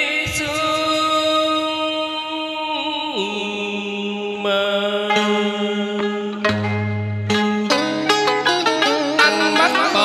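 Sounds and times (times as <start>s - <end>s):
plucked string accompaniment: 0.0s - 10.0s
man singing long note: 9.0s - 10.0s.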